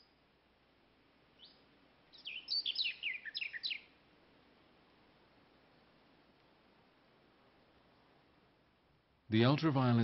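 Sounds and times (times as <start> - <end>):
small bird singing: 0.0 - 0.3, 1.3 - 4.0.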